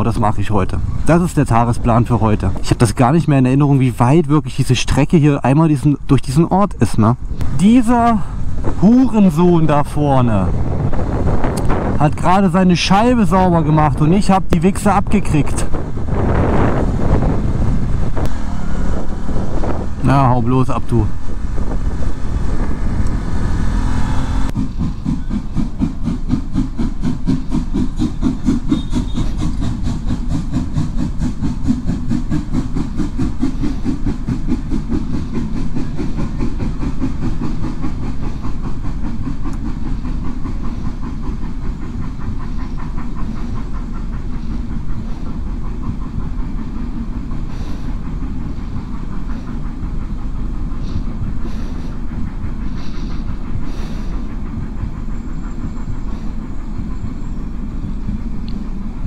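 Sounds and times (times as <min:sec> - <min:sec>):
wind noise: 0:07.2 - 0:12.4, 0:14.7 - 0:25.2
train wheels clacking: 0:07.3 - 0:59.0.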